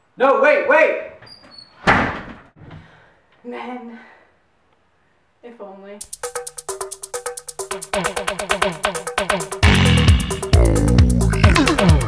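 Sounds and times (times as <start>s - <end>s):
door slamming shut: 1.8s - 2.4s.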